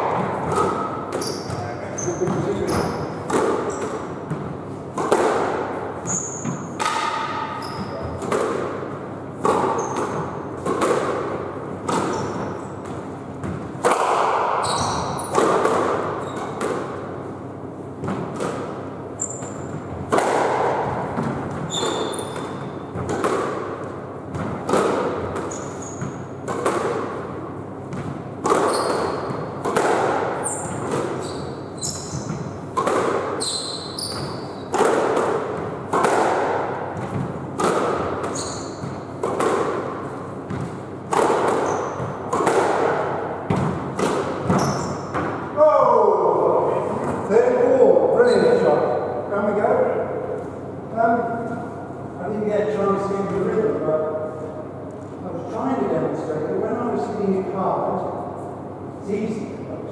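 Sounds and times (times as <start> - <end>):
squash ball hits echoing: 0.0 - 58.2
shoes squeaking on wooden floor: 0.6 - 3.1, 6.0 - 6.7, 7.6 - 8.2, 12.1 - 12.8, 14.6 - 15.4, 16.2 - 16.6, 19.2 - 19.9, 21.6 - 23.0, 28.6 - 29.5, 30.4 - 32.5, 33.4 - 34.7, 38.3 - 39.0, 41.6 - 42.2, 44.5 - 45.0.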